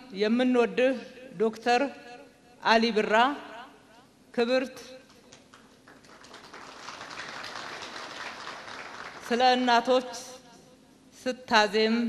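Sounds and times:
audience applauding: 0:05.3 - 0:09.4.

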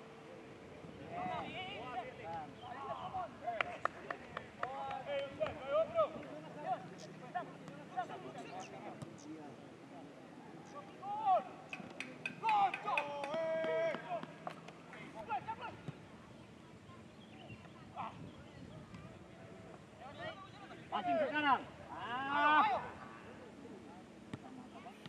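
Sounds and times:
players shouting: 0:11.0 - 0:14.3.

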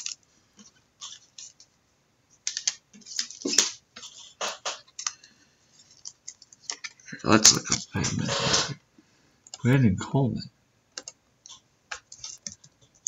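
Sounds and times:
computer keyboard typing: 0:11.0 - 0:13.0.

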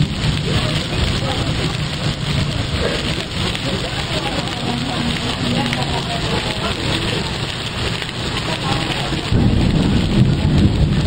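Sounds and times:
heavy rain pouring: 0:00.0 - 0:11.0
loud deep rumble: 0:00.0 - 0:11.0.

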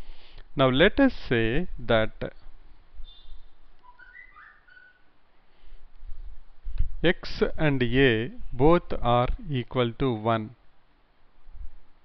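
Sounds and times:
short whistled notes: 0:03.0 - 0:05.1.

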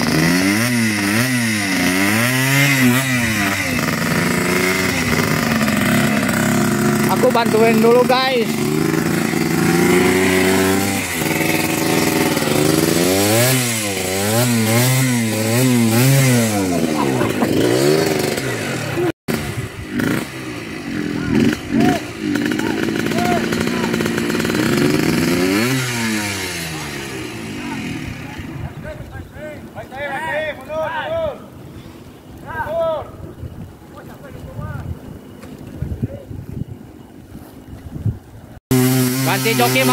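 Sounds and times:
dirt bike engine revving: 0:00.0 - 0:30.2, 0:38.6 - 0:39.9.

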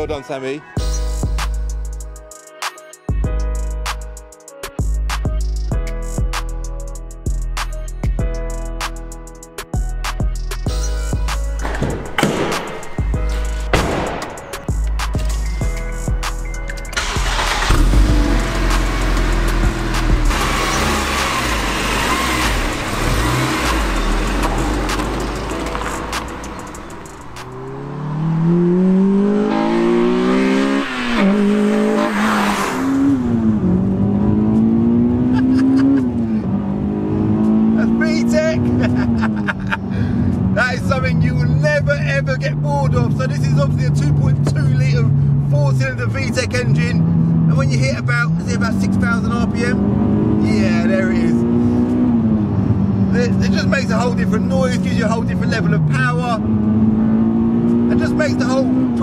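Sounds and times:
car engine revving in cabin: 0:17.3 - 0:25.6, 0:26.2 - 0:39.4, 0:46.5 - 0:55.0, 0:55.9 - 0:59.0.

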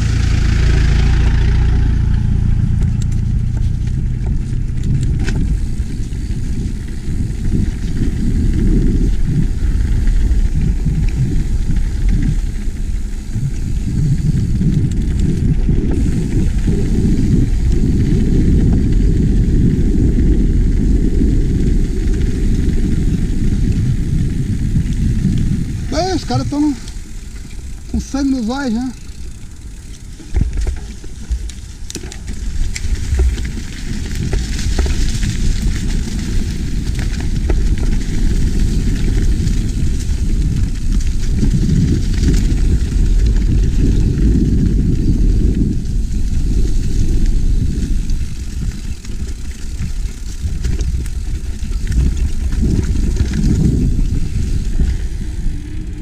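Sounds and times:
mountain bike rumble and rattle: 0:00.0 - 0:56.0
wind buffeting microphone: 0:00.0 - 0:56.0
bike knocking over bumps: 0:28.9 - 0:46.9.

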